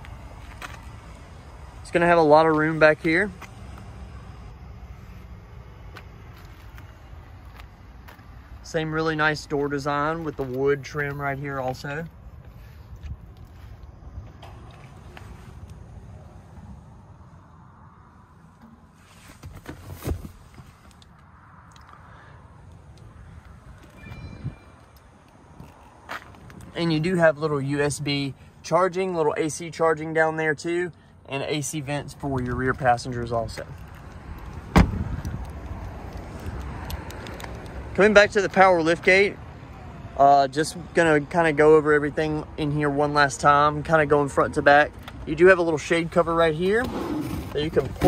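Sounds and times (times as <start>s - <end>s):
footsteps on pavement: 0.0s - 1.1s, 5.9s - 8.7s, 9.4s - 15.8s, 25.4s - 26.8s
wind buffeting microphone: 34.7s - 35.7s.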